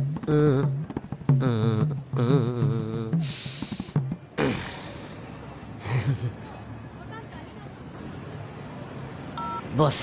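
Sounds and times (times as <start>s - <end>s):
man gasping: 1.5s - 6.2s.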